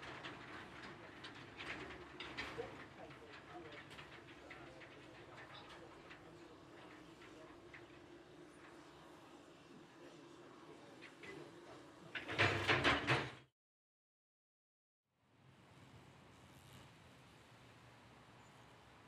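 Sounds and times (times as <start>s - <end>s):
train wheels clicking over rail joints: 0.0s - 8.8s, 12.1s - 13.4s.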